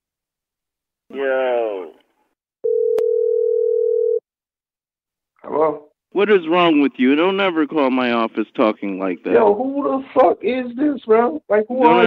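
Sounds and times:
telephone beep tone: 0:02.6 - 0:04.2.

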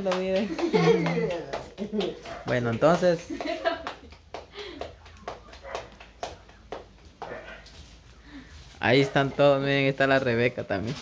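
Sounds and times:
hands slapping tortilla dough: 0:00.0 - 0:08.0.

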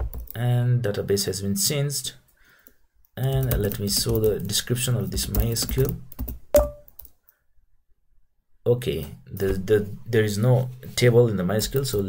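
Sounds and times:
computer keyboard keystrokes: 0:03.3 - 0:04.6, 0:05.2 - 0:07.1.

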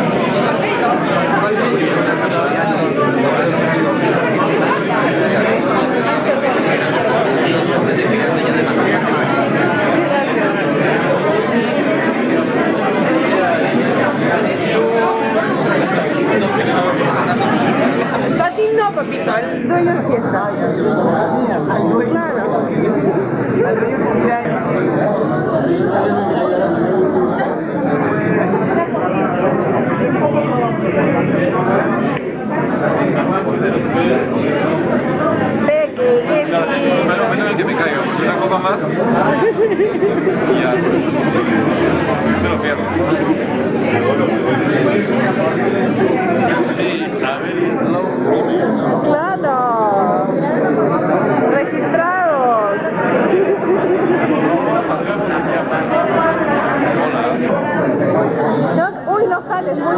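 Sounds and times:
hubbub of conversation: 0:00.0 - 0:59.9
people talking at once: 0:00.0 - 0:59.9.

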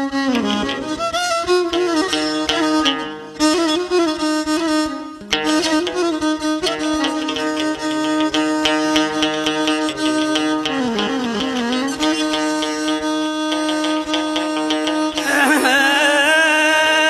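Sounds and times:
bowed violin melody: 0:00.0 - 0:17.0
plucked lute strokes: 0:00.0 - 0:17.0.

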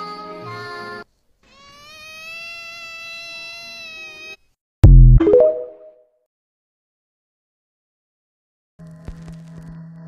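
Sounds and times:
long cat-like meow: 0:01.4 - 0:04.4
loud bass hit: 0:04.8 - 0:05.3.

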